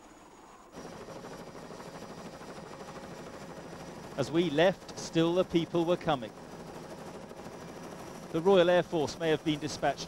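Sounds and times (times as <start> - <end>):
helicopter rotor chop: 0.0 - 10.0.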